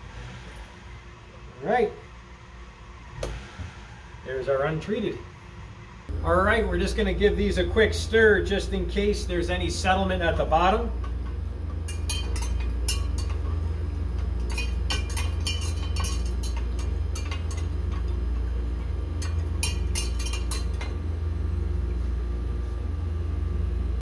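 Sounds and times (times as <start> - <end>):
steady low hum: 0.0 - 24.0
rods clinking against glass beakers: 11.8 - 13.4, 14.4 - 18.4, 19.2 - 21.0.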